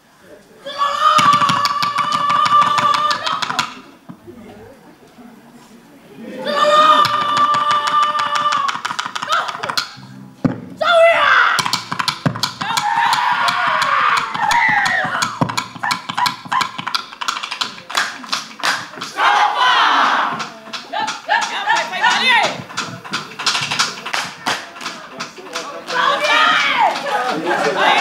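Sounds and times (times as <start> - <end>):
group shouting and singing: 0.6 - 3.6, 6.4 - 9.5, 10.8 - 11.8, 12.6 - 16.7, 19.0 - 22.6, 25.6 - 28.0
person singing long held call: 6.6 - 8.9
rapid hand claps and slaps: 7.0 - 10.0, 11.6 - 19.2, 20.3 - 28.0.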